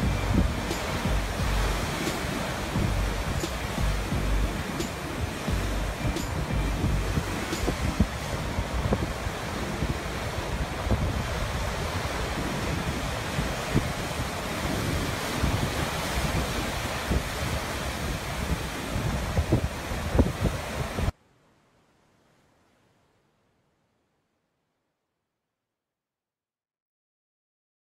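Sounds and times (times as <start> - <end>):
surf breaking over rocks: 0.0 - 21.1
wind rumbling on microphone: 0.0 - 21.1.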